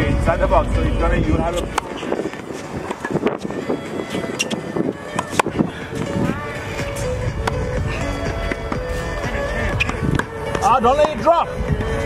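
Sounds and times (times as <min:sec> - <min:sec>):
voices: 0:00.0 - 0:07.1, 0:07.9 - 0:11.6
background music: 0:00.0 - 0:12.0
tennis balls hit by rackets: 0:01.6 - 0:02.0, 0:02.8 - 0:03.4, 0:04.4 - 0:05.6, 0:06.9 - 0:07.6, 0:08.4 - 0:11.3.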